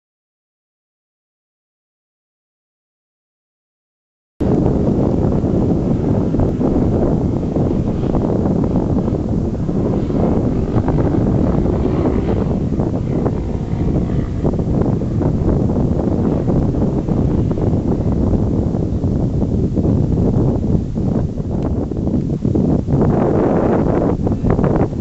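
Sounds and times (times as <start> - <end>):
wind buffeting microphone: 4.4 - 25.0.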